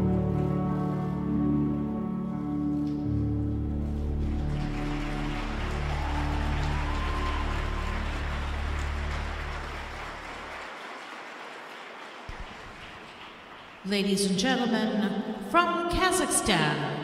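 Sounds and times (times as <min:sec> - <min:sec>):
program music with low notes: 0:00.0 - 0:10.6
audience applause: 0:03.1 - 0:14.0.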